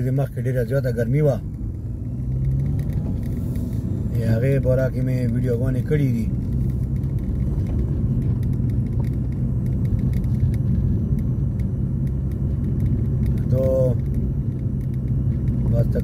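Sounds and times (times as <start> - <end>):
car cabin road and engine noise: 0.0 - 16.0.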